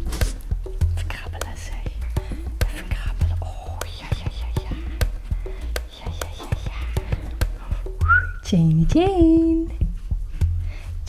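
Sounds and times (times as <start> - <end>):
background music: 0.0 - 11.0
soft whispering: 1.0 - 7.8.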